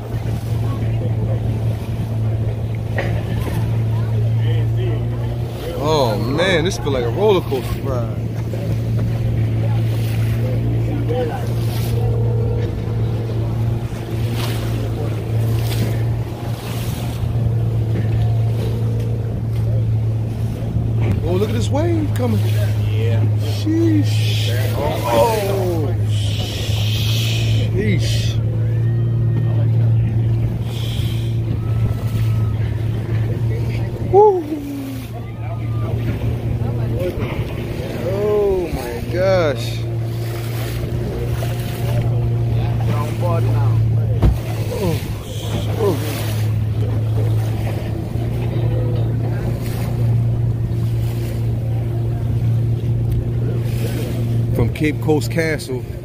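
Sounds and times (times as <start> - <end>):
outboard motor drone: 0.0 - 56.0
water splashing along hull: 0.0 - 56.0.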